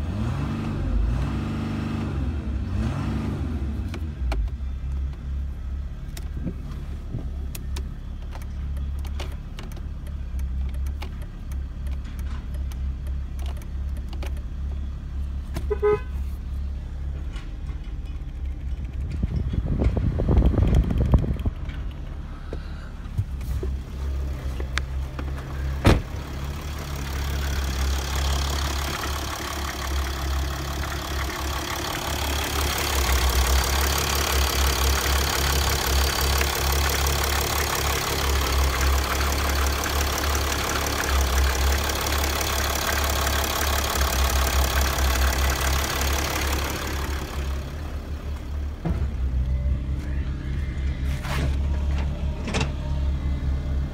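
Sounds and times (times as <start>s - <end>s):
car engine idling: 4.0s - 53.9s.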